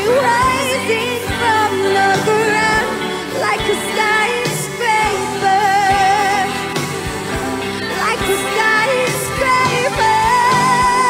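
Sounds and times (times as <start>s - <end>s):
live pop band with singing: 0.0s - 11.0s.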